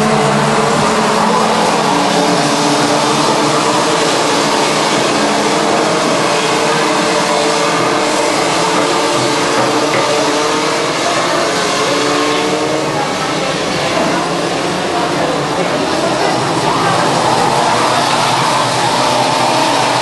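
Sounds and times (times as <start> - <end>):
racing kart engines buzzing: 0.0 - 20.0.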